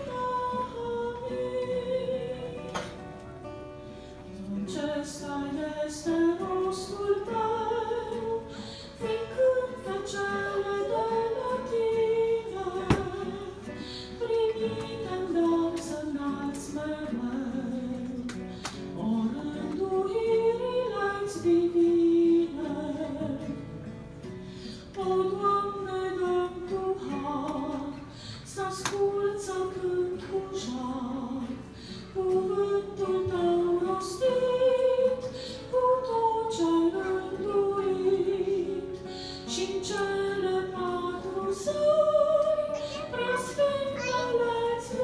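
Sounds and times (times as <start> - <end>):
woman singing: 0.0 - 3.6, 4.3 - 23.8, 24.8 - 45.0.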